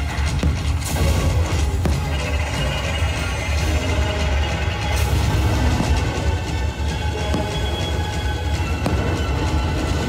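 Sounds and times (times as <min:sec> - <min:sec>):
fireworks rumbling bursts: 0:00.0 - 0:10.0
fireworks sharp bangs: 0:00.0 - 0:10.0
soundtrack music: 0:00.0 - 0:10.0.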